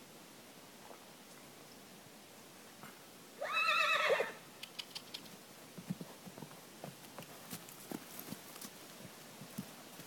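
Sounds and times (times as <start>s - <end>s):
horse whinnying: 3.4s - 4.4s.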